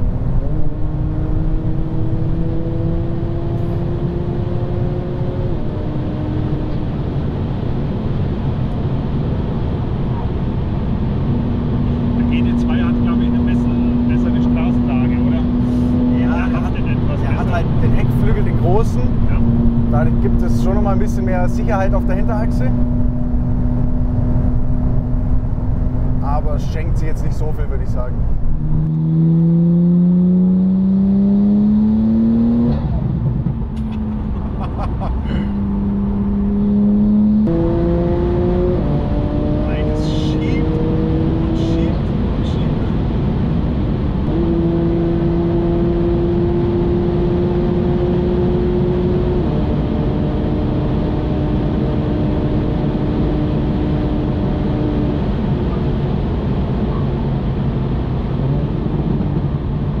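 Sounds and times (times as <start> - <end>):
car engine droning: 0.0 - 60.0
road noise: 0.0 - 60.0
wind noise: 15.4 - 27.4.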